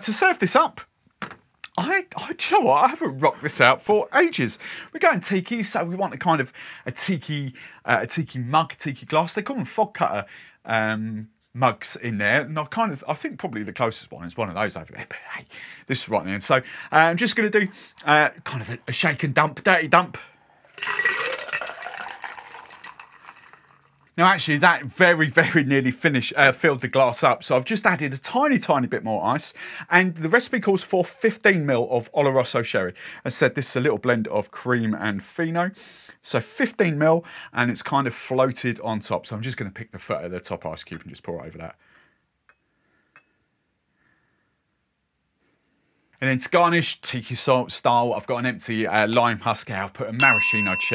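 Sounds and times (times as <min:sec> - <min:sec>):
ice clattering: 0:20.7 - 0:24.0
liquid splashing into mug: 0:20.7 - 0:24.0
rising ring of filling mug: 0:20.7 - 0:24.0, 0:50.2 - 0:50.9.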